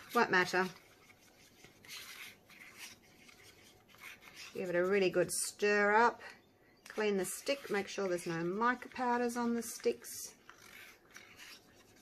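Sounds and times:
wooden stick scraping paper cup: 0:00.0 - 0:05.3, 0:06.9 - 0:12.0.

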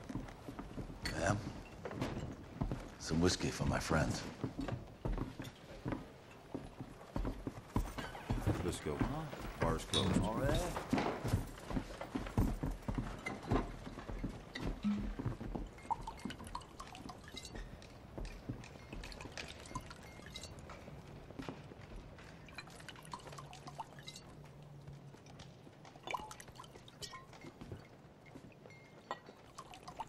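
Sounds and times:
footsteps on wooden floor: 0:00.0 - 0:16.2
glass clinking: 0:09.9 - 0:10.7, 0:13.3 - 0:21.5, 0:22.3 - 0:24.5, 0:26.0 - 0:30.0
whiskey pouring into glass: 0:15.0 - 0:20.6, 0:22.5 - 0:24.3, 0:26.0 - 0:27.9, 0:29.0 - 0:30.0.

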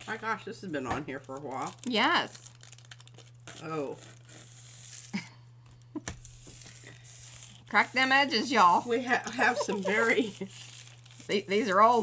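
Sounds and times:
low electrical hum: 0:00.0 - 0:12.0
paint peeling from plate: 0:06.2 - 0:12.0.

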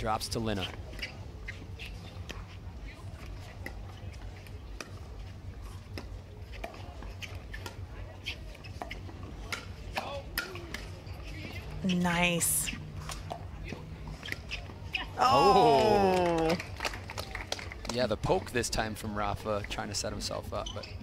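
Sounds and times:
paddles hitting pickleball: 0:05.9 - 0:11.6.

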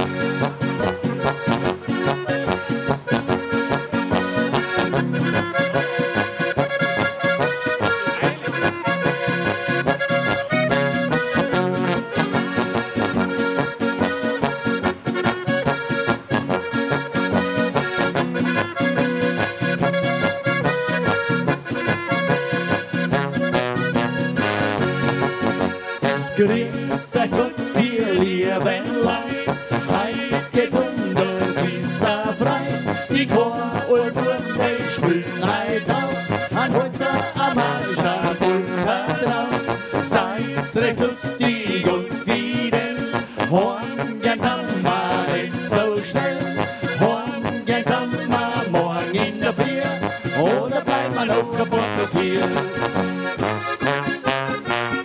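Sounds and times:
accordion: 0:00.0 - 0:55.0
guitar: 0:00.0 - 0:55.0
trombone: 0:00.0 - 0:55.0.

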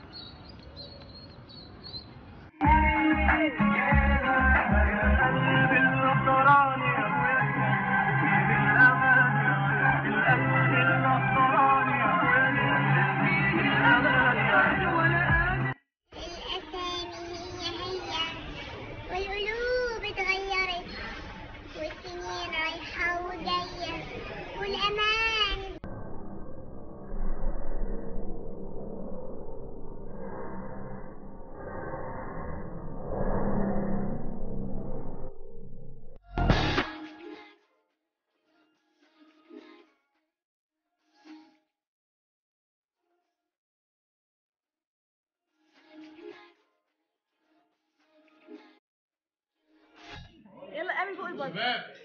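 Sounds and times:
outdoor background noise: 0:00.0 - 0:02.6, 0:16.2 - 0:36.9
small birds chirping: 0:00.0 - 0:02.6.

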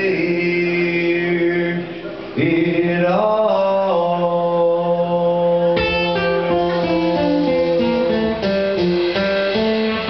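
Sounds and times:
man singing a long note: 0:00.0 - 0:08.5
acoustic guitar: 0:00.0 - 0:10.0.

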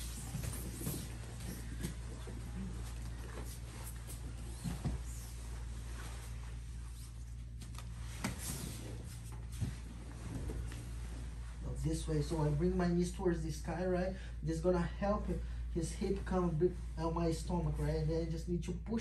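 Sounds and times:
fabric rustling: 0:00.0 - 0:11.8
steady low hum: 0:00.0 - 0:19.0.

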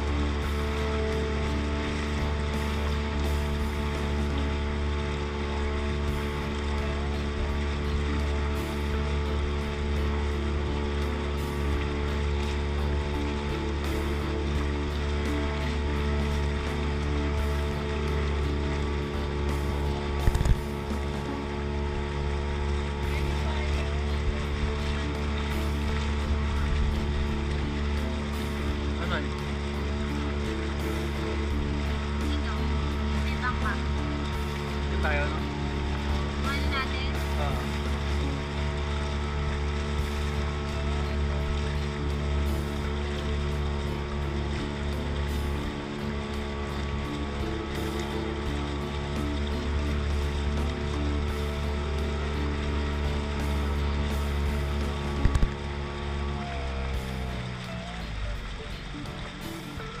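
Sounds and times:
motorboat engine running: 0:00.0 - 1:00.0
rush of boat wake: 0:00.0 - 1:00.0.

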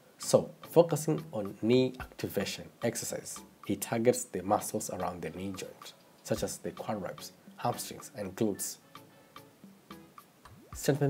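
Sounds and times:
quiet background music: 0:00.0 - 0:11.0
narrator speaking: 0:10.8 - 0:11.0.

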